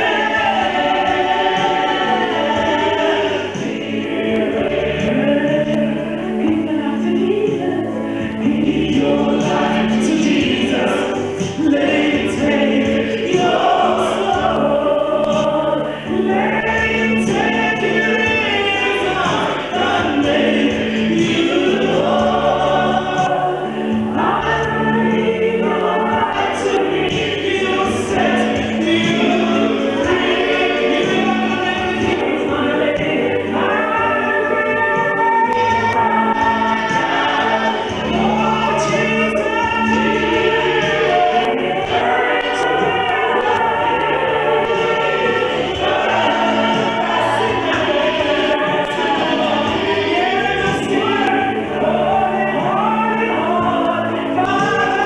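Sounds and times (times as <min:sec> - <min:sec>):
woman singing into a microphone: 0:00.0 - 0:55.0.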